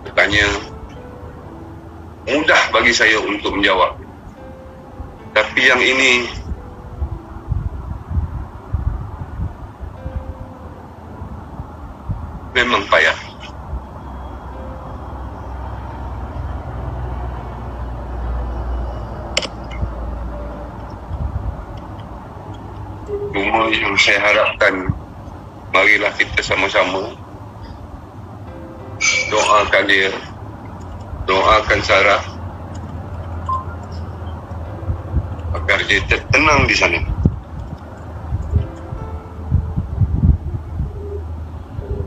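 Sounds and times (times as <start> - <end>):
sharp click: 19.4 - 19.9
low steady rumbling: 30.3 - 42.0.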